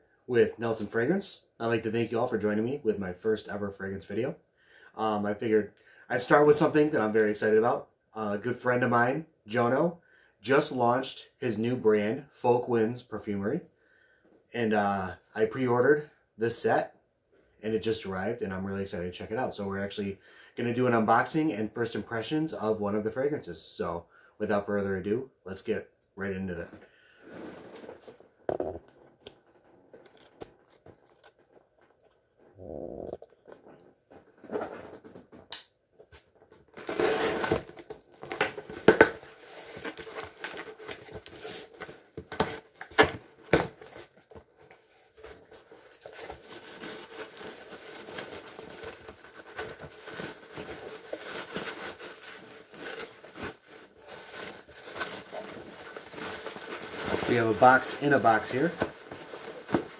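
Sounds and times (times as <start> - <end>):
cardboard flaps scraping and rustling: 27.3 - 28.3, 36.1 - 59.9
tape tearing: 36.6 - 44.4.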